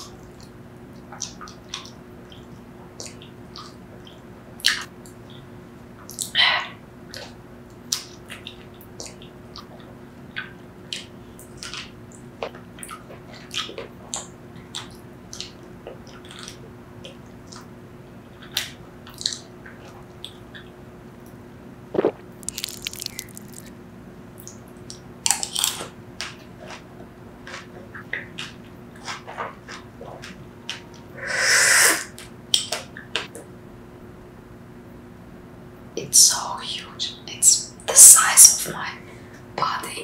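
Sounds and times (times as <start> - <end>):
chewing with seeds crunching: 22.0 - 23.7
wet mouth sounds biting mango: 22.0 - 23.7
breathy rush of air from mouth: 31.2 - 32.1.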